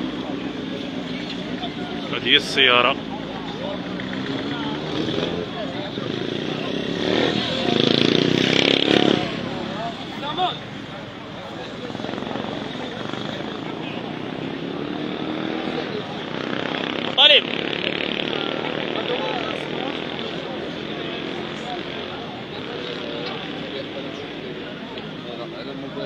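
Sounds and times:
crowd voices talking and calling: 0.0 - 26.0
street traffic: 0.0 - 26.0.

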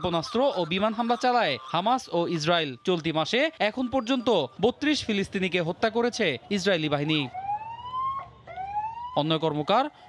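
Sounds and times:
ambulance siren wailing: 0.0 - 10.0.

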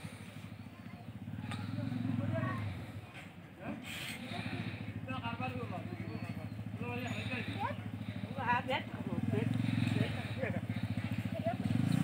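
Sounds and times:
small engine puttering: 0.0 - 12.0.

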